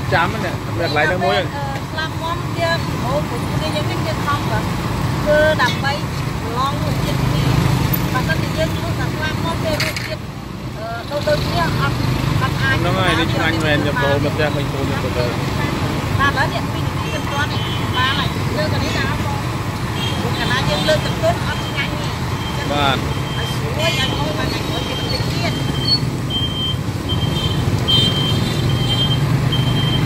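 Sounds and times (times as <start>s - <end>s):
people talking: 0.0s - 10.2s, 10.8s - 19.6s, 20.2s - 25.8s.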